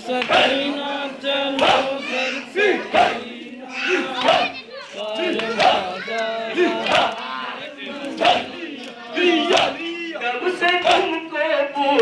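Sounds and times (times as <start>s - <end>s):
men chanting lamentation: 0.0s - 12.0s.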